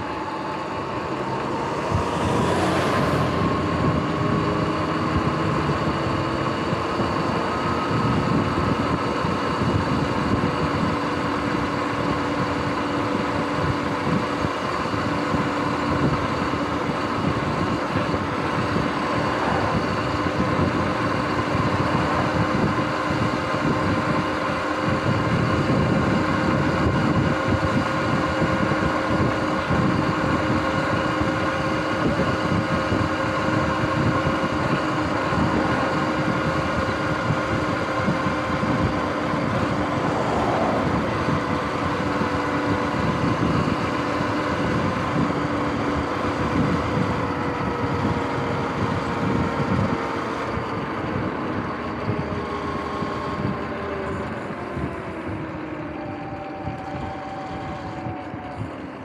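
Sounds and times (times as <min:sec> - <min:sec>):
electric motorbike motor whining: 0:00.0 - 0:59.0
wind rumbling on microphone: 0:00.0 - 0:59.0.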